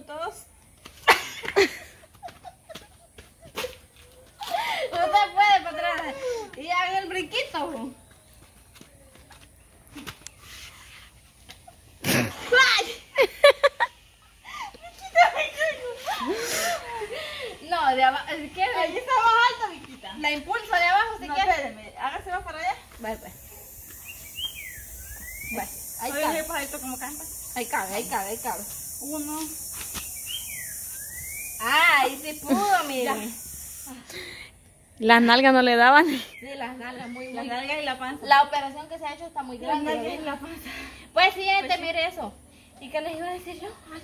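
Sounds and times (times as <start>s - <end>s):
women laughing: 1.0s - 5.3s, 11.6s - 17.7s, 32.4s - 33.1s.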